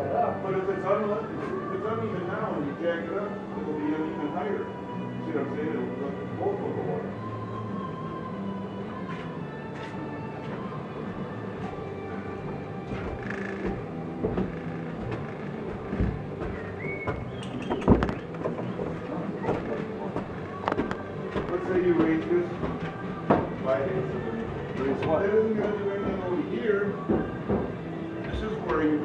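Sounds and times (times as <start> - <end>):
faint indistinct voices: 0.0 - 29.0.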